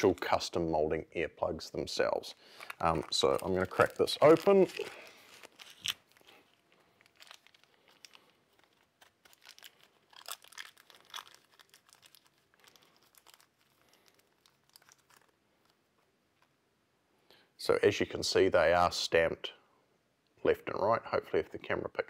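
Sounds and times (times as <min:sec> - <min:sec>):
plastic packaging crinkling: 0:02.4 - 0:16.5.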